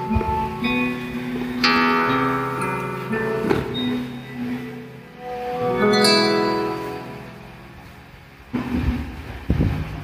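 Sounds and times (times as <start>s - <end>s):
faint music: 0.0s - 10.0s
low rumbling microphone bursts: 6.9s - 10.0s.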